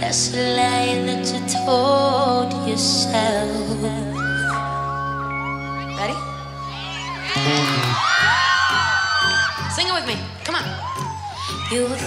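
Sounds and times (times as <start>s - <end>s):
fans screaming: 4.2s - 9.9s, 10.6s - 12.0s.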